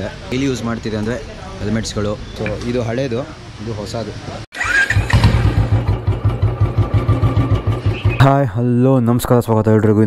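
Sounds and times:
motorcycle engine idling: 4.9s - 8.4s.

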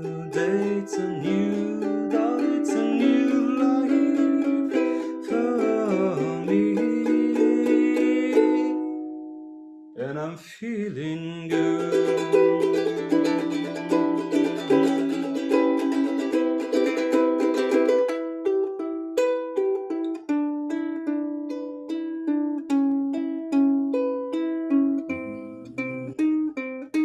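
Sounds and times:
ukulele picked notes: 0.0s - 9.9s, 11.2s - 27.0s
ukulele strumming: 0.0s - 9.9s, 11.0s - 27.0s.

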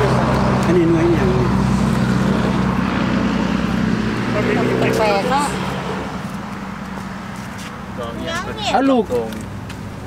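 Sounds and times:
engine running with low hum: 0.0s - 10.0s.

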